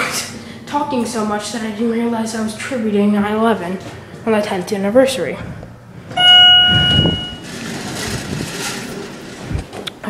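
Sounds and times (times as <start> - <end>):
loud single-pitched tone: 6.2 - 7.5.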